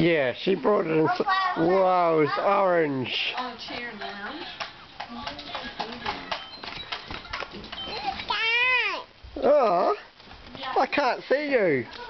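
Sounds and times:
young child's high-pitched voice: 1.0 - 2.5, 7.9 - 9.1.

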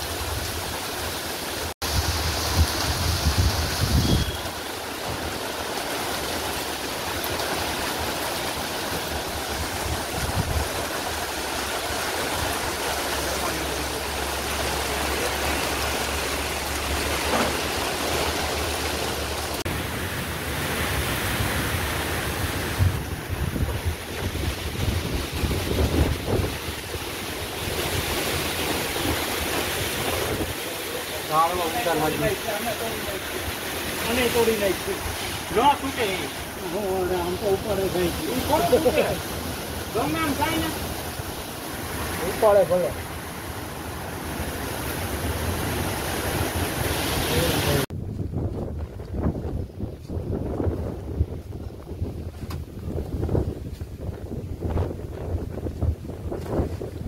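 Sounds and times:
torrential rain: 0.0 - 57.0
wind buffeting microphone: 1.8 - 4.5, 8.7 - 19.7, 20.6 - 30.7, 43.3 - 57.0.

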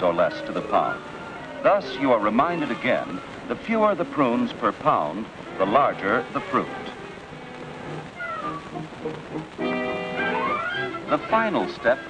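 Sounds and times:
faint low notes: 0.0 - 12.0
cartoon whine-like cry: 10.2 - 11.2.

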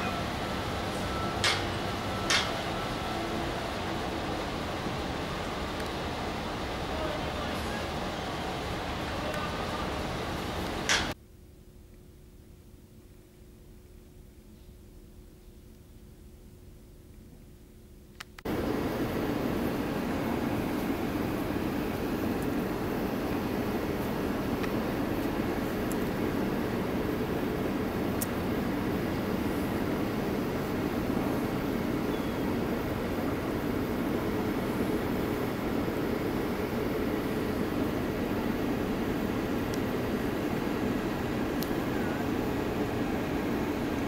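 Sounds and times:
steady rushing noise: 0.0 - 11.2, 18.5 - 44.0.

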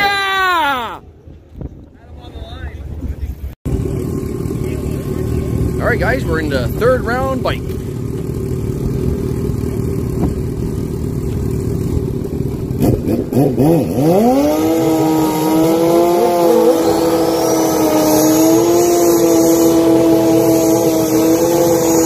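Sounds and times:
high engine whine: 3.3 - 22.0
motorcycle engines idling: 3.7 - 22.0
motorcycle throttle blips and revving: 3.7 - 22.0.

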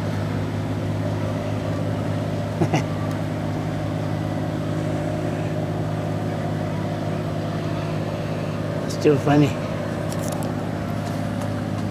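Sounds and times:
engine droning steadily: 0.0 - 11.9.

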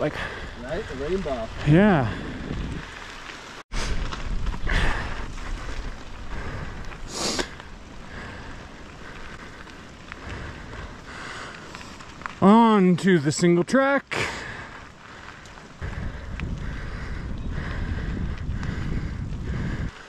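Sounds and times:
wind rumble on microphone: 0.0 - 3.1, 3.8 - 12.4, 15.2 - 20.0
bike tyres on dirt trail: 0.0 - 20.0.

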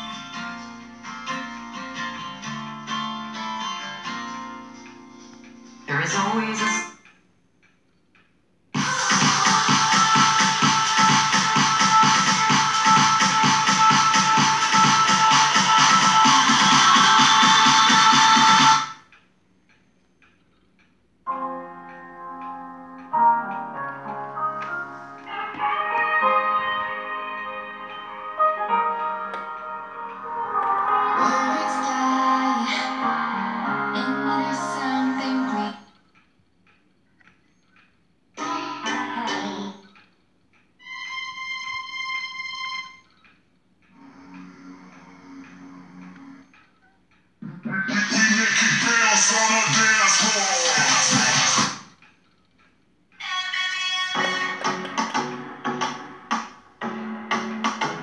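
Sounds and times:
music through loudspeakers: 0.0 - 7.0, 8.8 - 19.0, 21.3 - 35.8, 47.4 - 51.9, 54.0 - 58.0.

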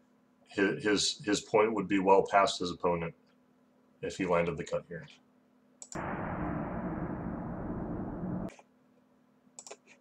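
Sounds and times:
steady rushing noise: 6.0 - 8.5.

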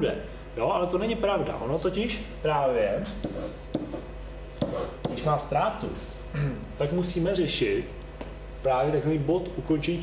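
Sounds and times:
marker strokes on whiteboard: 3.2 - 5.3.

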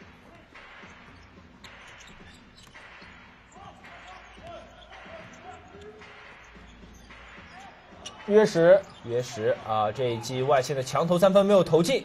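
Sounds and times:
basketball bouncing on court: 0.0 - 9.7
distant voices and crowd noise: 0.0 - 12.0.

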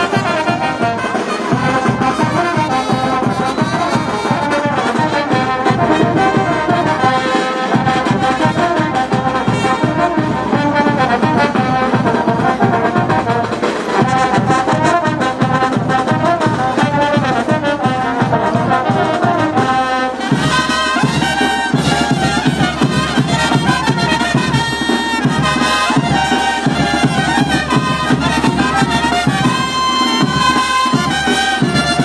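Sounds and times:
brass band playing dance tune: 0.0 - 32.0
steady drum beat: 0.0 - 32.0.

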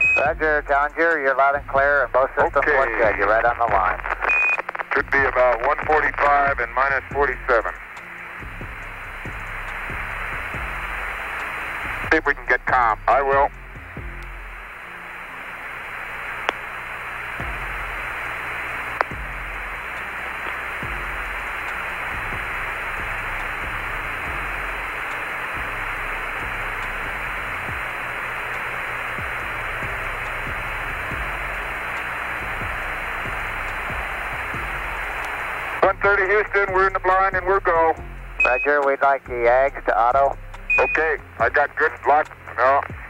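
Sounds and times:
radio static hiss: 0.0 - 43.0
faint clicks: 4.1 - 5.0, 16.4 - 16.7, 18.9 - 19.2, 20.0 - 20.7.

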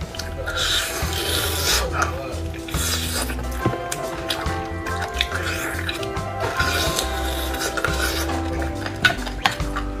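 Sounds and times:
mouth slurping marrow from bone: 0.0 - 10.0.

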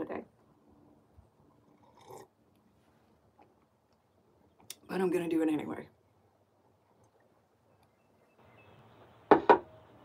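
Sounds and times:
mug knocking on hard surface: 9.3 - 9.7.

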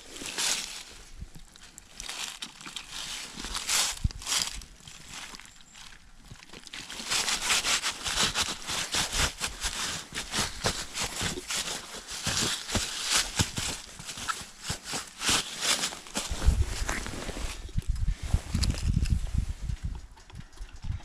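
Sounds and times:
boots shuffling through dry leaves: 0.0 - 1.1, 1.9 - 6.0, 6.8 - 17.7.

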